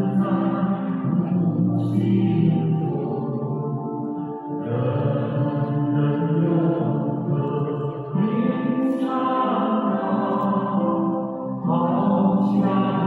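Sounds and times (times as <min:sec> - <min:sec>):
slow devotional chant-like singing: 0:00.0 - 0:13.0.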